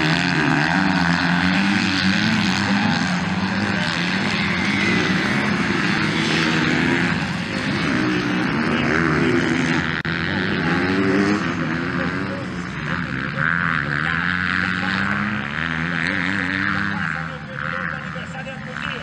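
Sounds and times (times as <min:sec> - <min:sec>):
dirt bike engines revving: 0:00.0 - 0:19.0.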